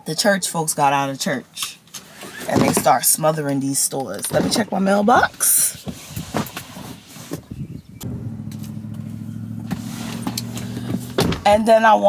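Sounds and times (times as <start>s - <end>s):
electric window motor hum: 8.0s - 11.3s.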